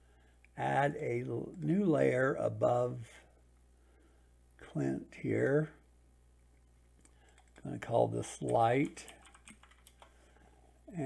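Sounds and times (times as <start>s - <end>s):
keyboard typing: 7.0s - 7.7s, 8.4s - 10.2s.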